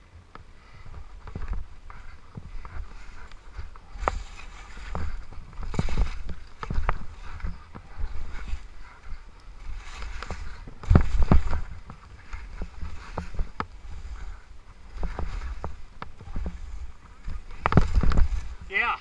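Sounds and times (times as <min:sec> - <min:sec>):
wind rumble on microphone: 0:00.0 - 0:19.0
skis scraping through snow: 0:00.6 - 0:19.0.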